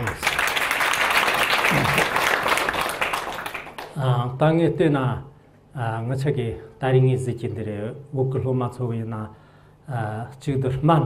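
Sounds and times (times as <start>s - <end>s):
audience applauding: 0.0s - 4.0s.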